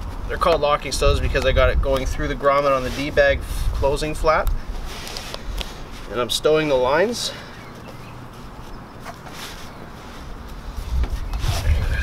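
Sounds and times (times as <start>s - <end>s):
parachute lines rustling: 2.4s - 12.0s.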